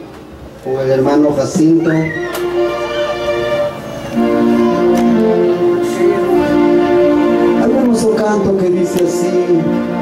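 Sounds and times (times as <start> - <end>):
live band music: 1.5 - 10.0.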